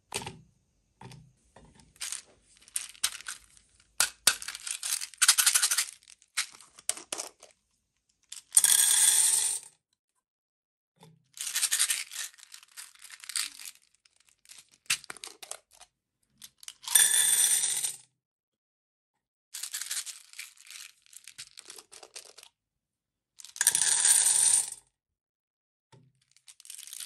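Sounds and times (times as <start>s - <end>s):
candy beads rattling into metal tin: 2.0s - 7.4s, 11.4s - 15.5s, 19.6s - 22.4s, 26.3s - 27.0s.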